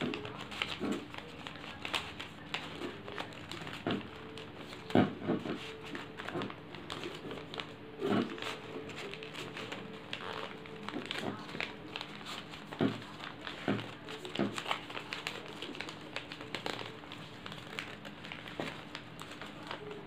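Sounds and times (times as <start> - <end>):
paper rustling and crinkling: 0.0 - 20.0.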